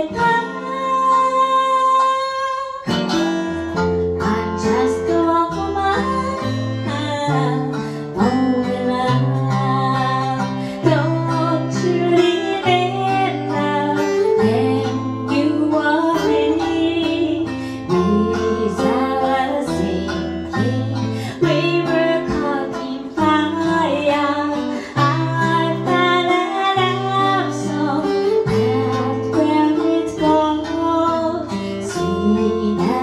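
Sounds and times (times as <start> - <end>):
acoustic guitar bass line: 0.0 - 33.0
plucked shamisen notes: 0.0 - 33.0
woman singing: 0.0 - 33.0.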